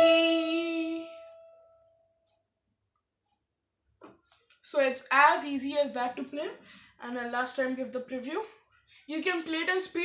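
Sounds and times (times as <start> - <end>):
electronic keyboard note: 0.0 - 2.0.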